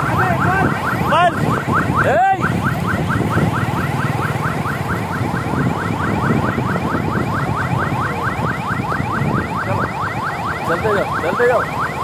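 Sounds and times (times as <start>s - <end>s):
electronic siren chirping: 0.0s - 12.0s
road traffic rumble: 0.0s - 12.0s.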